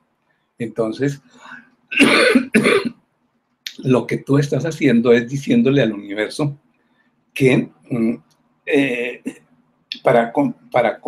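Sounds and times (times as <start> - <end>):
man coughing: 1.9 - 3.0.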